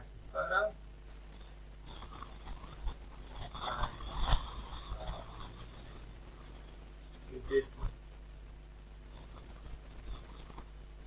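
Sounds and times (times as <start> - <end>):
scratchy rustling and scraping: 1.0 - 11.0.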